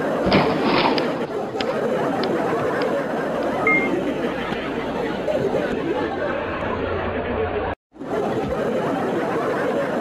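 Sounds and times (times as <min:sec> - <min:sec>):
chatter of many voices: 0:00.0 - 0:10.0
high beep: 0:03.6 - 0:04.0.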